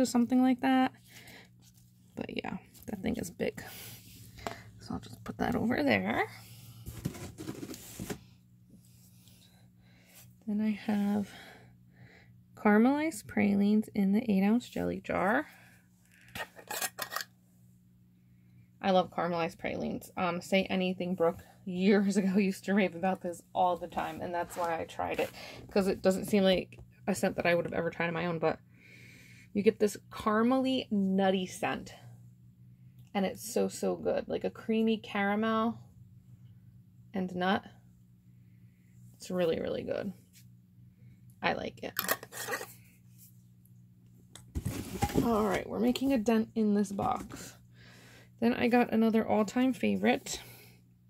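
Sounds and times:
faint low hum: 0.0 - 51.0
metal jar lid clicks and scrapes: 16.3 - 17.3, 41.9 - 42.8.

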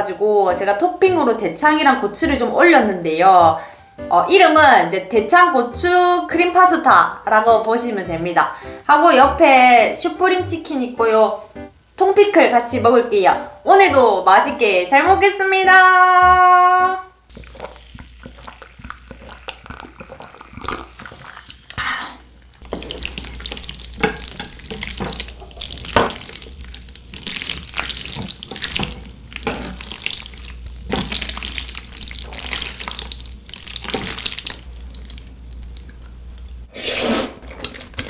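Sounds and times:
spaghetti stirred with chopsticks: 17.3 - 21.7, 22.6 - 36.7
sips and swallows: 17.3 - 21.8
slurp of noodles: 36.7 - 38.0.

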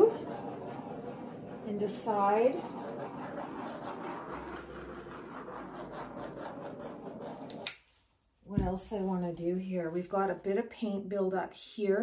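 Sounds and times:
butane torch flame hissing: 0.0 - 7.8.

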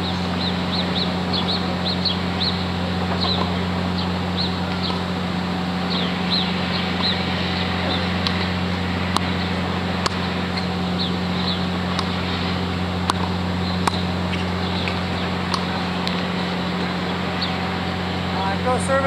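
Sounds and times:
birds chirping: 0.0 - 19.0
steady low hum: 0.0 - 19.0
tennis balls struck and bouncing: 3.0 - 3.6, 9.1 - 10.7, 11.8 - 12.3, 13.0 - 16.9.

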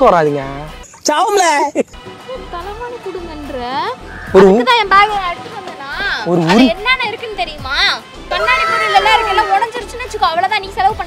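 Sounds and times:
people talking: 2.3 - 11.0.

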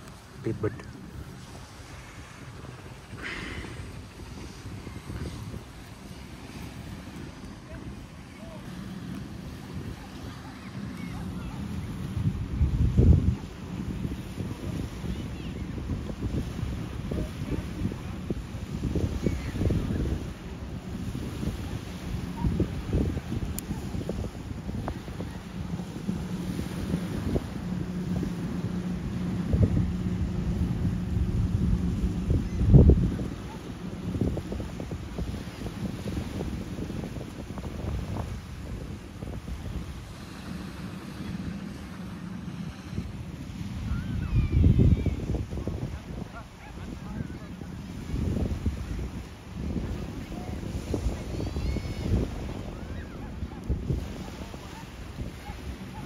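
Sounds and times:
distant motorboat engine droning: 0.0 - 56.0
small waves washing in: 0.0 - 56.0
wind buffeting microphone: 0.0 - 56.0.

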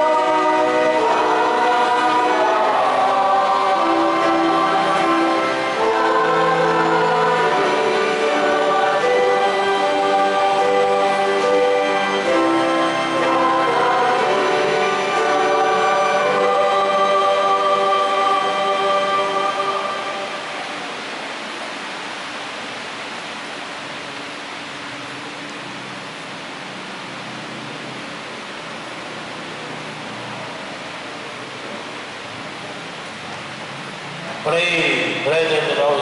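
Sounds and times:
choir holding a chord: 0.0 - 23.6
low room hiss: 0.0 - 36.0.

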